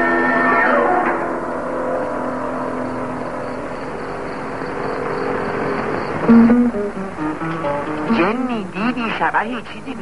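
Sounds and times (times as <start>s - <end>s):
steady rushing hiss: 2.1s - 10.0s
chord of held notes: 6.2s - 8.8s.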